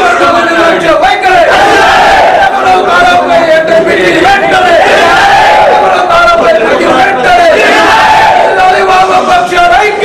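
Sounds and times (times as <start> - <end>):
crowd of men shouting: 0.0 - 10.0.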